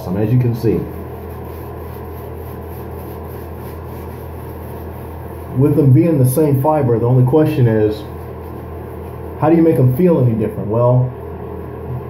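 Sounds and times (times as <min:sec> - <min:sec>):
low hum: 0:00.0 - 0:12.0
shaving brush rubbing lather: 0:00.1 - 0:10.4.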